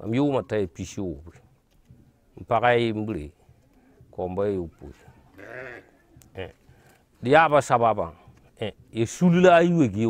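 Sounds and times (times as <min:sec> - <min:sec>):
faint sheep or goat bleat: 0:05.2 - 0:06.5.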